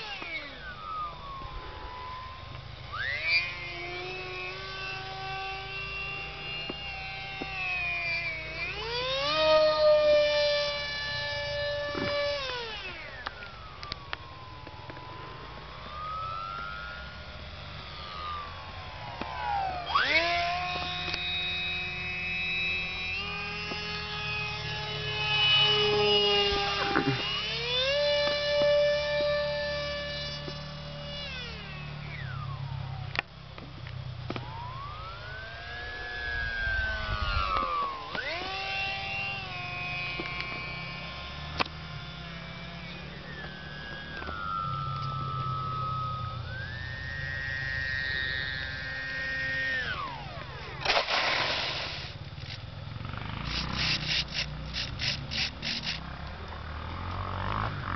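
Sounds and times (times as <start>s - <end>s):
electric propeller motor whining: 0.0s - 57.9s
wind rumble on microphone: 35.8s - 38.5s.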